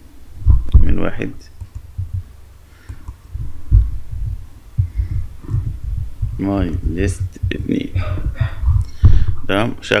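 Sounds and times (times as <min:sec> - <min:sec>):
low thumps on microphone: 0:00.4 - 0:01.0, 0:01.9 - 0:02.3, 0:03.0 - 0:09.5.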